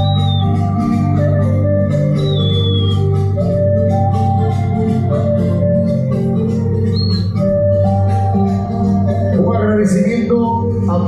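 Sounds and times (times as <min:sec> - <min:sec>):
steady bass line: 0:00.0 - 0:10.4
held keyboard-like notes: 0:00.0 - 0:11.0.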